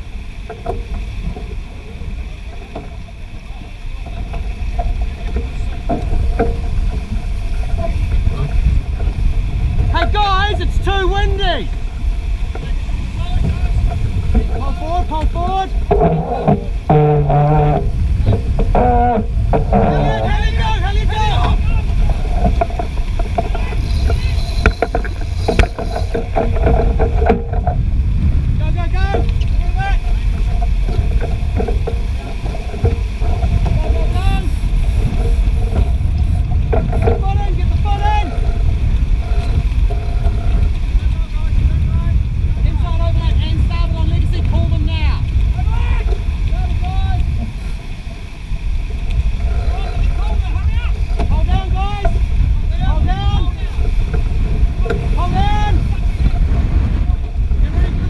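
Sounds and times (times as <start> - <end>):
water rushing along hull: 0.0 - 58.0
wind roaring on microphone: 0.0 - 58.0
crew voices calling out: 18.6 - 26.4, 31.6 - 35.8, 49.4 - 52.2.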